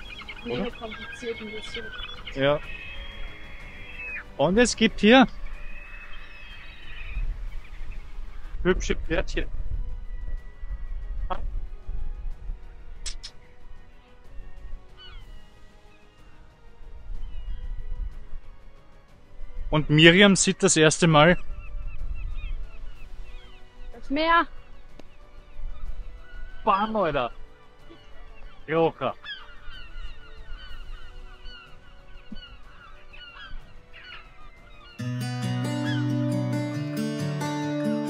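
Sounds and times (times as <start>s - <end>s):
flock of birds chirping: 0.0s - 8.6s, 13.1s - 18.0s, 19.8s - 38.0s
background music with held tones: 0.0s - 38.0s.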